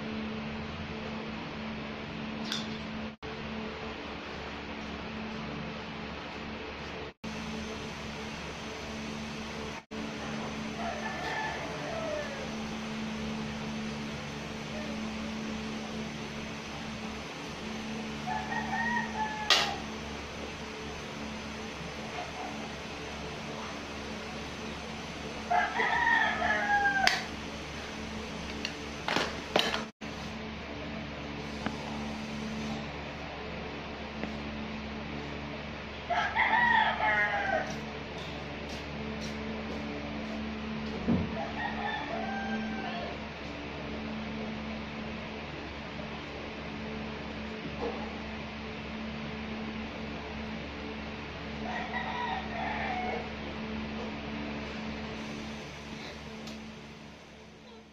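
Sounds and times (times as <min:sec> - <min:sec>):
electric fan humming: 0:00.0 - 0:57.9
rooster crowing: 0:10.2 - 0:12.7, 0:18.2 - 0:19.9, 0:25.4 - 0:27.4, 0:36.0 - 0:37.9, 0:41.2 - 0:43.3, 0:51.6 - 0:53.5.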